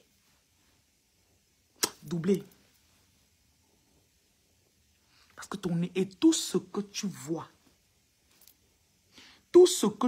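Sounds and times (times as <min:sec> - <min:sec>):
sharp click: 0:01.8 - 0:02.1.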